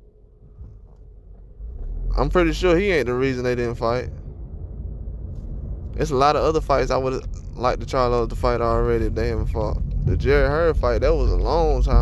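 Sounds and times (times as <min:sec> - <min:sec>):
faint steady hum: 0:00.0 - 0:12.0
low rumble: 0:00.0 - 0:12.0.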